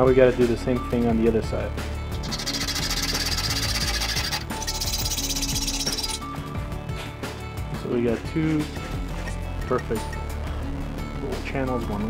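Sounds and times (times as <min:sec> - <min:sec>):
background music: 0:00.0 - 0:12.0
hacksaw cutting metal: 0:02.2 - 0:06.2.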